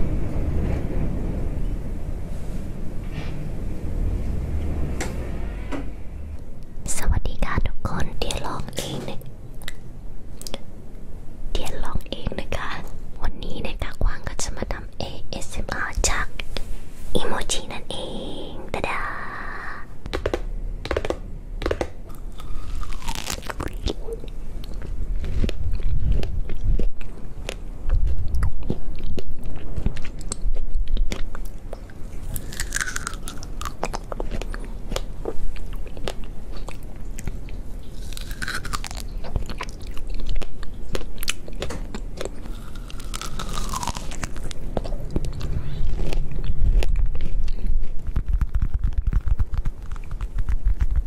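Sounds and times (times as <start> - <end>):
biting and chewing strawberries: 20.0 - 51.0.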